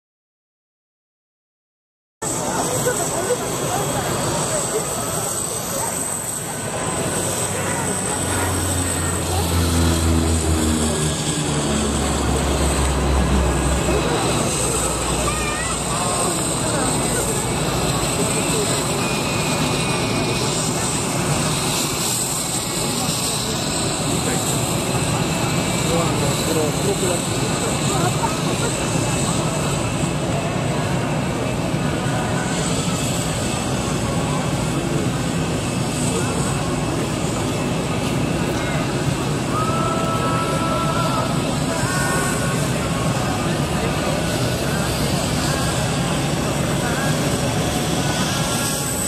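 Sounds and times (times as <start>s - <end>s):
turboprop airplane engines droning: 2.2s - 49.0s.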